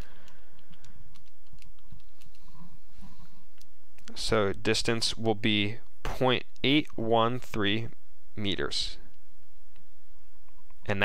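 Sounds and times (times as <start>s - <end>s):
typing on keyboard: 0.0s - 2.4s.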